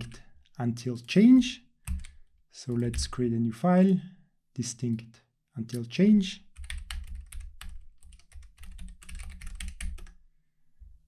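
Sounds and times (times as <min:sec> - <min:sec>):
computer keyboard typing: 0:01.8 - 0:03.1, 0:06.5 - 0:10.2.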